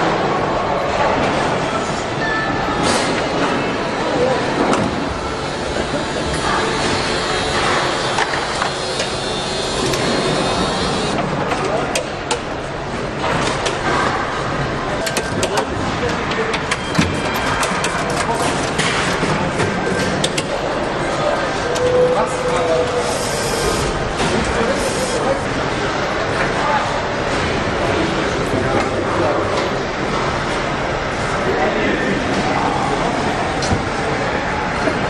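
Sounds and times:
steady factory din: 0.0 - 35.0.

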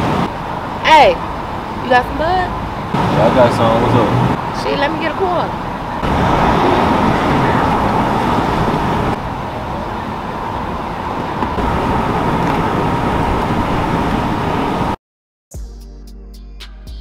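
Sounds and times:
vehicle rumble and hiss: 0.0 - 15.0.

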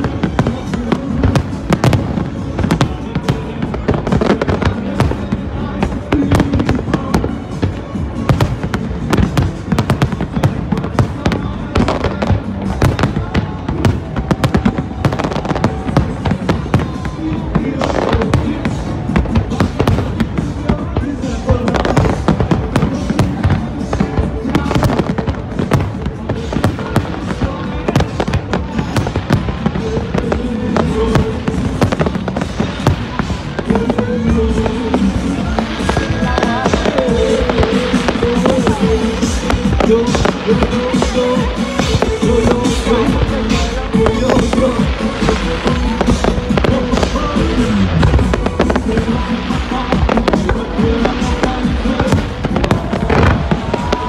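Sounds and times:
fireworks bangs and crackles: 0.0 - 54.0
music playing: 0.0 - 54.0.

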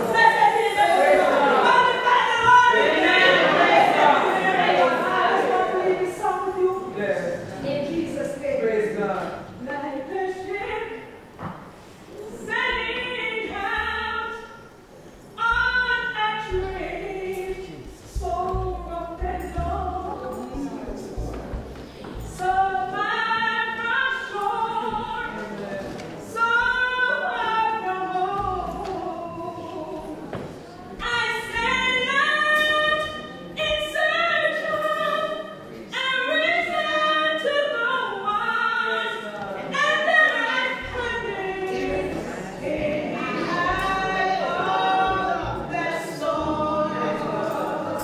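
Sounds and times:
woman singing gospel unaccompanied: 0.0 - 11.3, 12.2 - 48.0.

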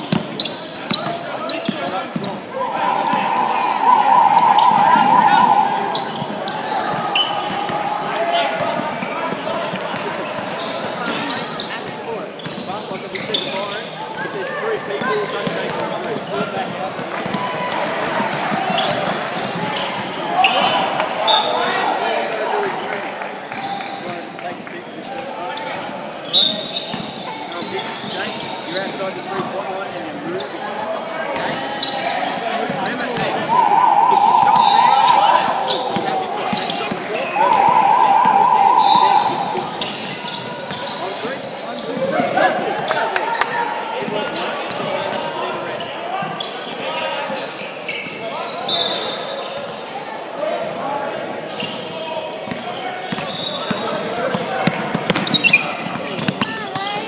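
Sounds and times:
voices in echoing hall: 0.0 - 57.0
short high-pitched whistle blasts: 2.7 - 6.8, 33.4 - 40.1
loud buzzer tone: 2.8 - 6.4, 33.4 - 36.3, 37.3 - 40.0.

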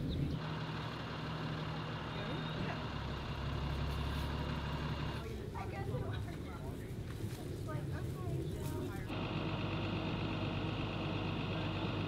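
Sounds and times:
engine running steadily: 0.0 - 12.0.

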